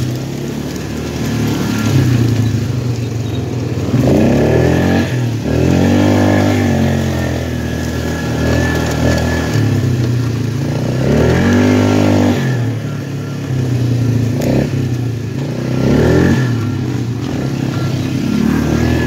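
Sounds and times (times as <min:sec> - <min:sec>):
atv engine revving: 0:00.0 - 0:19.0.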